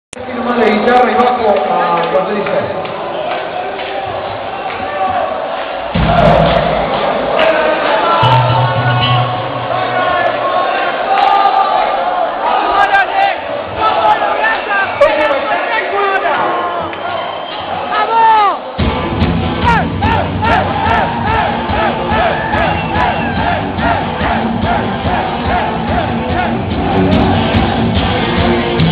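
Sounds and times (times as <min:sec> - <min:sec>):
crowd noise: 0:00.1 - 0:28.9
heavy metal band playing: 0:06.0 - 0:10.4, 0:18.8 - 0:28.9.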